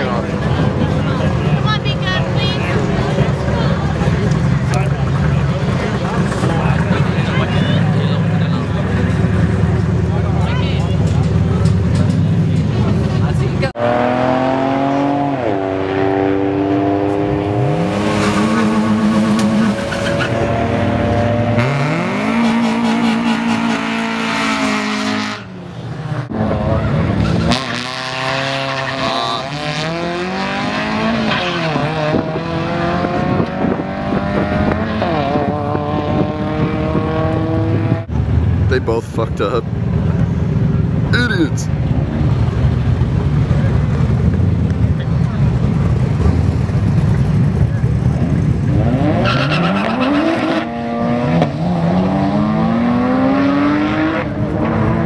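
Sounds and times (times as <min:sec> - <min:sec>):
racing car engine revving: 0:00.0 - 0:38.2, 0:42.2 - 0:55.0.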